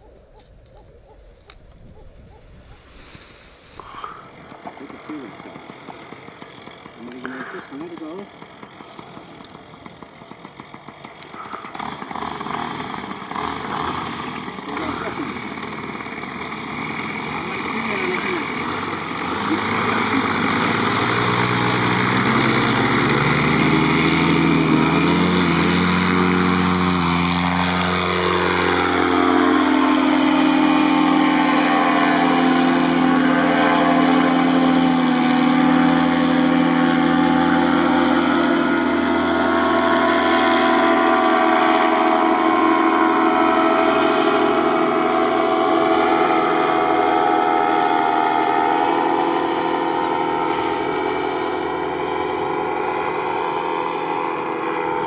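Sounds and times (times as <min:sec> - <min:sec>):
paramotor engine and propeller: 0:00.0 - 0:55.0.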